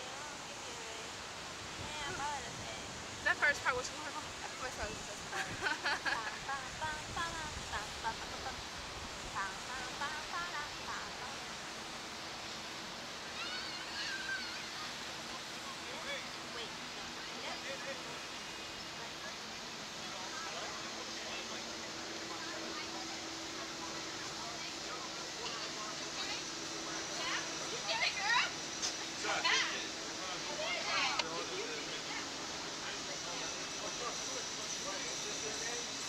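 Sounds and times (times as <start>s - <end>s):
faint voices: 0.0s - 36.0s
wind rushing on microphone: 1.6s - 10.0s.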